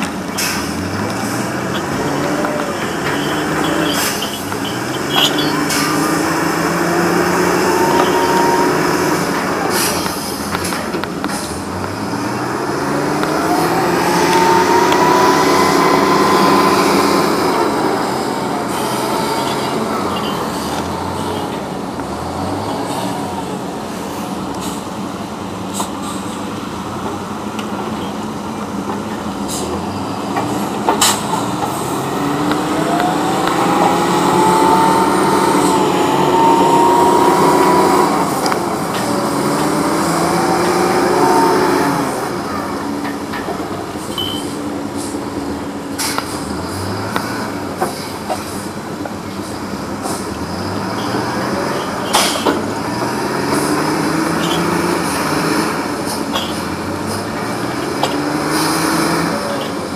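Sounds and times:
diesel engines revving: 0:00.0 - 0:59.9
high whine rising in pitch: 0:01.6 - 0:09.7, 0:12.9 - 0:20.1, 0:31.8 - 0:42.4
sharp metal clanks: 0:02.8 - 0:06.1.

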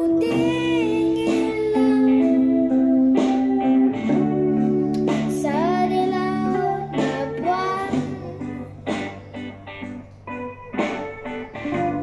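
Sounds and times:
boy singing pop ballad: 0:00.0 - 0:09.5
guitar backing track: 0:00.0 - 0:12.0.

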